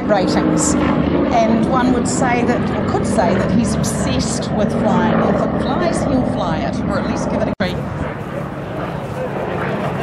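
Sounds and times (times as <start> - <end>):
public-address commentary: 0.0 - 7.9
propeller plane engine droning: 0.0 - 10.0.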